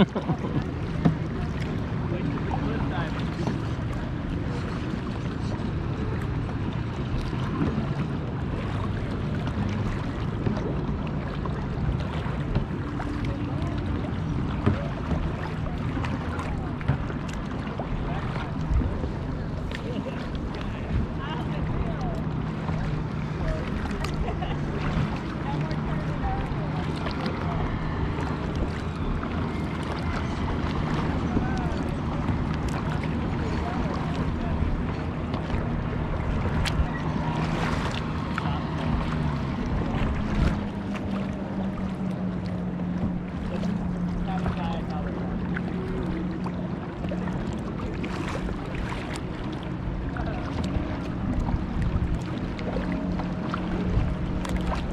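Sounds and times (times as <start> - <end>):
boat engine drone: 0.0 - 54.9
water splashing: 0.0 - 54.9
wind and water rushing: 0.0 - 54.9.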